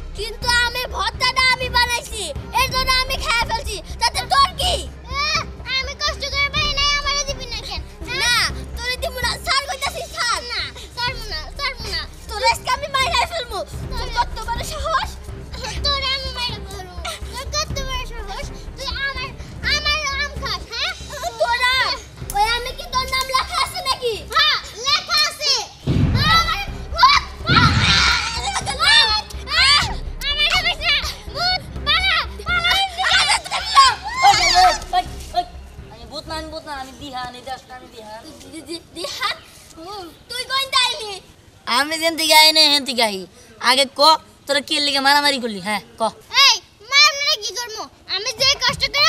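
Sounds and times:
background music: 0.0 - 43.1, 48.0 - 49.0
girl talking and crying out: 0.2 - 35.6
girl shouting and shrieking: 23.3 - 35.1
woman shouting and shrieking: 31.9 - 35.0.

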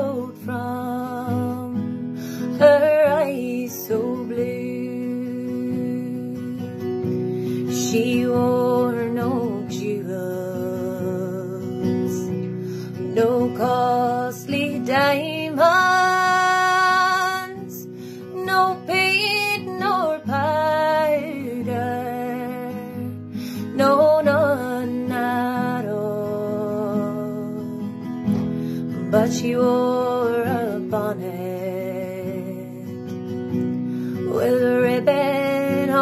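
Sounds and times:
acoustic guitar: 0.0 - 36.0
woman singing folk ballad: 0.0 - 36.0.

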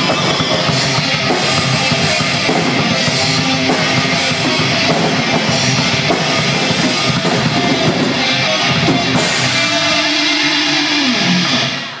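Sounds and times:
distorted electric guitar note: 0.0 - 12.0.

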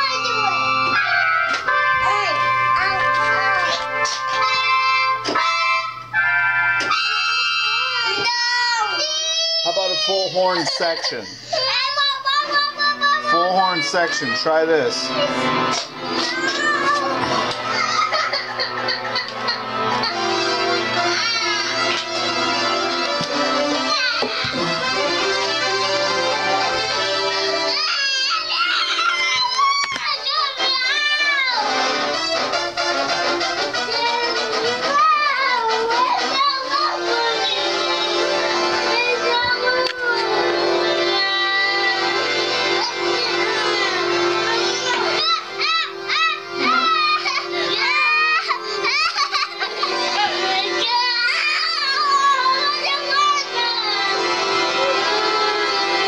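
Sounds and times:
child's voice: 0.0 - 1.0, 7.1 - 15.5, 16.2 - 18.2, 23.8 - 24.8, 27.7 - 31.7, 34.0 - 38.0, 41.0 - 54.2
electronic keyboard chords: 0.0 - 8.9, 12.6 - 56.0.

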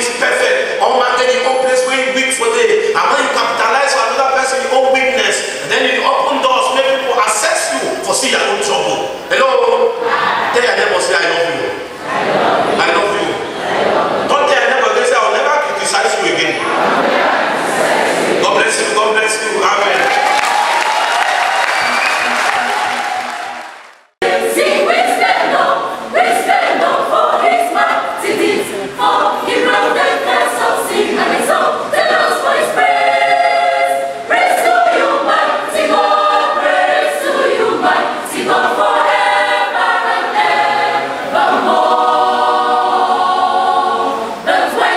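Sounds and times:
choir singing: 0.0 - 44.9
noise: 0.0 - 44.9.

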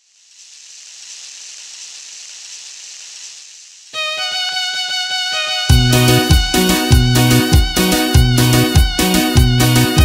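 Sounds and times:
steady hiss sound effect: 0.0 - 5.4
music: 4.0 - 10.0.

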